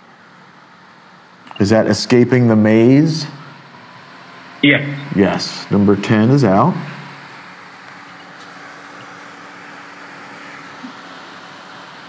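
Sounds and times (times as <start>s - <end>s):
faint hum: 0.0s - 12.0s
room noise hiss: 0.0s - 12.0s.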